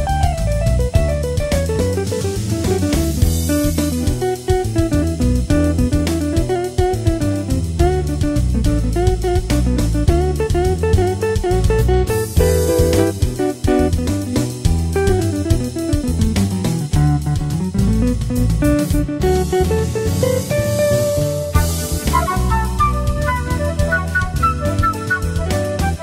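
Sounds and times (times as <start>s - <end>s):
bass guitar: 0.0s - 26.0s
drums: 0.0s - 26.0s
electric guitar lead solo: 3.5s - 16.1s, 17.6s - 26.0s.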